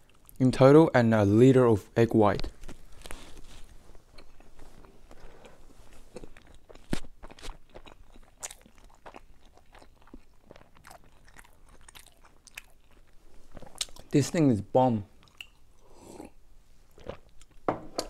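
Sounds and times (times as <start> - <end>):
person chewing with mouth smacks: 3.0 - 14.1, 15.2 - 17.7.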